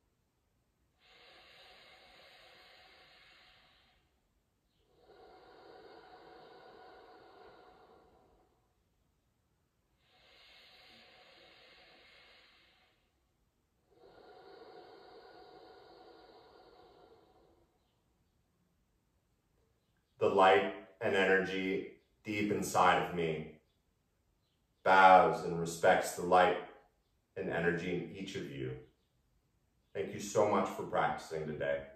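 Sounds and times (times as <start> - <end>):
man breathing slowly: 0.9 - 8.8, 9.9 - 18.1.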